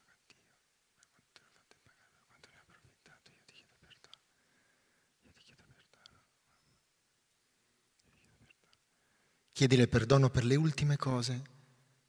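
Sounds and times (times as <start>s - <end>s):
faint whispering: 0.0s - 4.5s, 5.1s - 6.8s, 8.0s - 9.2s
soft hisses: 0.0s - 9.6s.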